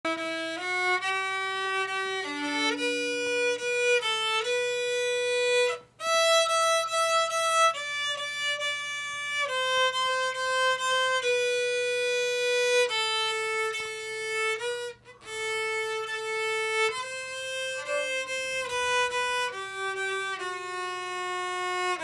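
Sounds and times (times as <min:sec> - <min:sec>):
solo violin melody: 0:00.0 - 0:22.0.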